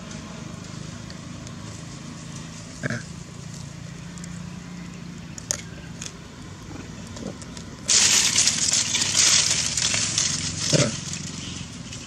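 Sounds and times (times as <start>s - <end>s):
loud crackling rustle: 7.8s - 12.0s.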